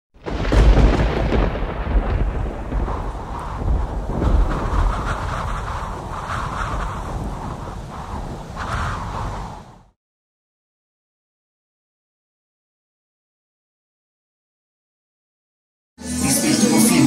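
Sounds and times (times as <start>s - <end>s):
deep rumbling noise: 0.2s - 10.0s
crackly haze: 2.0s - 9.9s.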